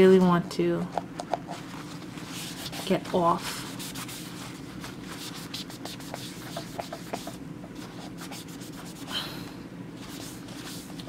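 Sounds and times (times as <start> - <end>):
paper towel rubbing on metal: 1.7 - 9.1, 10.0 - 11.0.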